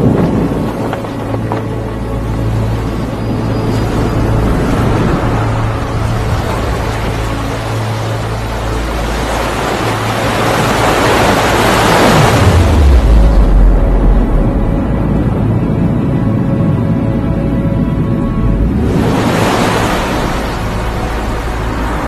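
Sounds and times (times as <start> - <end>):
wind buffeting microphone: 0.0 - 22.0
big wave crashing: 3.6 - 15.5, 18.3 - 22.0
surf breaking: 3.7 - 14.9, 18.4 - 22.0.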